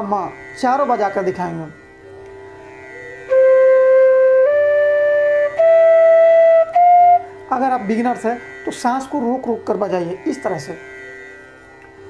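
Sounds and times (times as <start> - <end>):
steady drone tone: 0.0 - 12.0
bamboo flute notes: 3.3 - 7.4.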